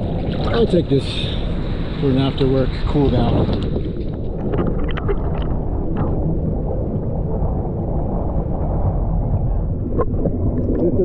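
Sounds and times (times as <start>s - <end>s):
small water splashes: 0.0s - 6.3s
water sloshing at microphone: 0.0s - 11.0s.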